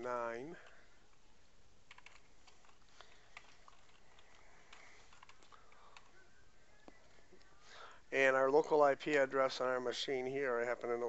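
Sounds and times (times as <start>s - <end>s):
keyboard keys clicking: 1.9s - 2.8s, 3.4s - 6.1s.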